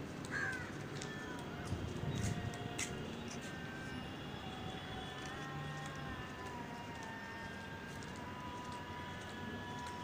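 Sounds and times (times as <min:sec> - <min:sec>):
bird cawing: 0:00.3 - 0:01.3.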